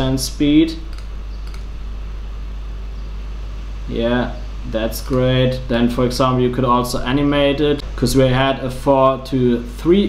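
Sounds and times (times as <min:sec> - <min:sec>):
low-pitched hum: 0:00.0 - 0:10.0.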